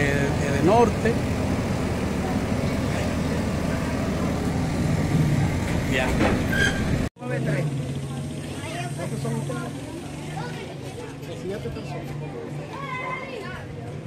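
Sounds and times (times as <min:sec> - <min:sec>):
low hum: 0:00.0 - 0:07.1
vehicle engine running: 0:00.0 - 0:11.2.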